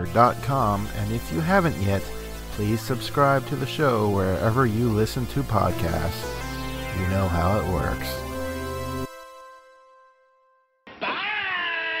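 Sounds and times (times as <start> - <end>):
theme music held notes: 0.0 - 10.4
long drawn-out call: 11.0 - 12.0.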